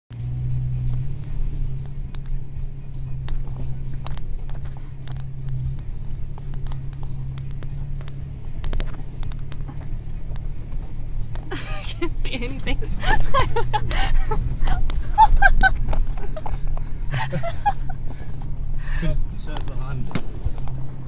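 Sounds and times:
engine running under load: 0.1 - 21.0
sharp clicks and knocks: 3.2 - 11.5, 19.4 - 20.9.

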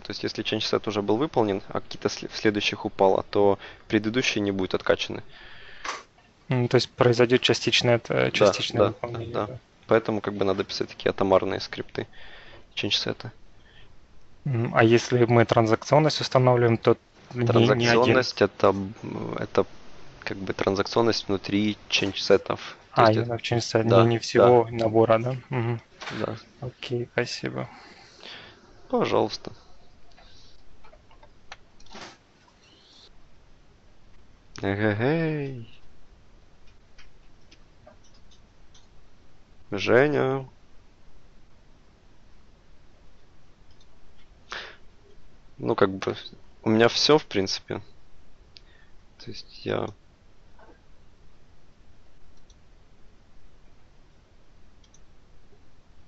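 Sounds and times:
open microphone room noise: 0.0 - 56.0
faint small clicks: 36.6 - 39.0, 43.2 - 44.4, 48.5 - 48.7, 52.3 - 52.6, 54.8 - 55.1.

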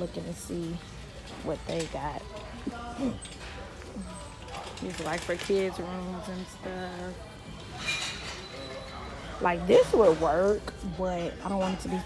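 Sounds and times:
shopping cart rattling on tiles: 4.4 - 7.1.

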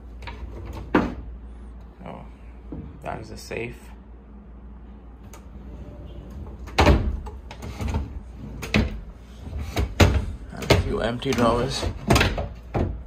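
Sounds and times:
drawers sliding: 5.2 - 13.0
drawers knocking shut: 6.4 - 13.0.

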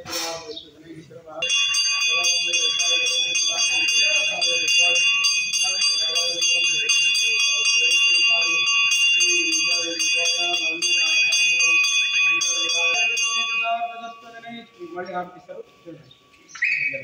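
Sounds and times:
crowd voices: 0.0 - 17.0
metal bell ringing rapidly: 1.4 - 16.4.

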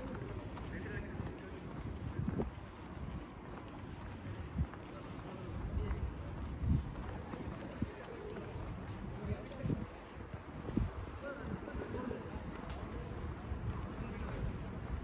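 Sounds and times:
wind rumbling on microphone: 0.0 - 15.0.

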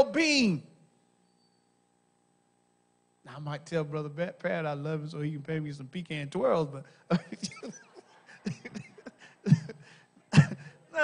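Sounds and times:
people laughing and chuckling: 7.1 - 11.0.

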